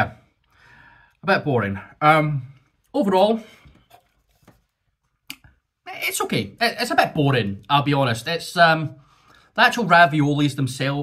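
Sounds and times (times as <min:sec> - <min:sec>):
man speaking: 0:00.0 - 0:00.3, 0:01.2 - 0:03.6, 0:05.8 - 0:09.0, 0:09.6 - 0:11.0.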